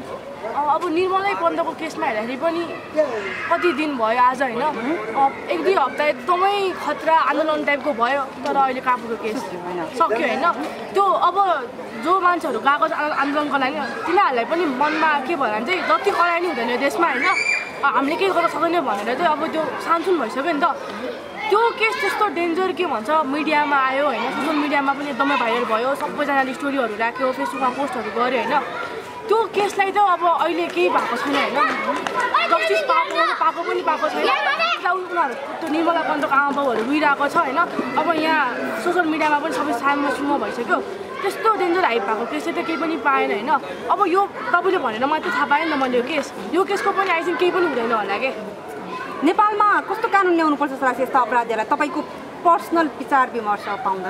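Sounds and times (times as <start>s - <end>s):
woman talking: 49.2s - 54.0s.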